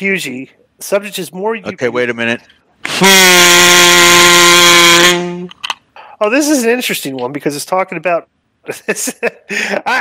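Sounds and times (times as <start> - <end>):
loud buzzer tone: 2.9 - 5.5.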